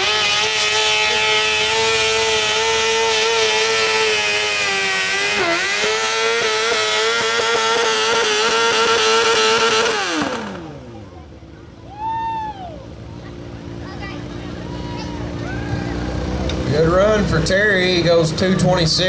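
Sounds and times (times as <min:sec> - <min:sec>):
tractor engine at full throttle: 0:00.0 - 0:11.9, 0:12.6 - 0:19.0.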